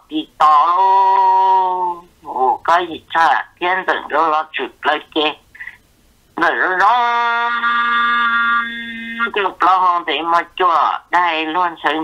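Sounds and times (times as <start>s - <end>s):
synthetic voice holding a syllable: 0.0s - 5.4s, 6.4s - 12.0s.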